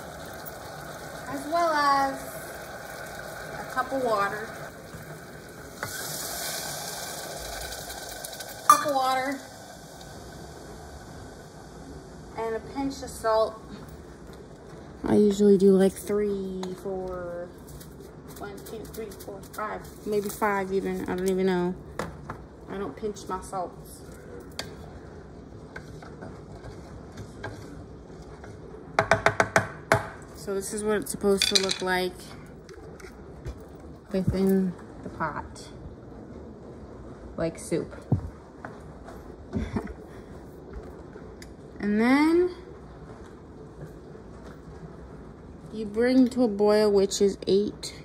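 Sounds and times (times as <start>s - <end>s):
water hissing in hot oil: 0.0s - 13.4s
wooden spoon knocking metal saucepan: 29.0s - 30.2s.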